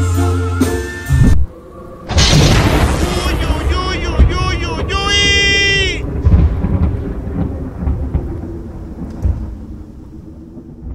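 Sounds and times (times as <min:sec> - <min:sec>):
low booms: 0:01.1 - 0:10.9
deep thunder-like rumbling: 0:01.2 - 0:10.9.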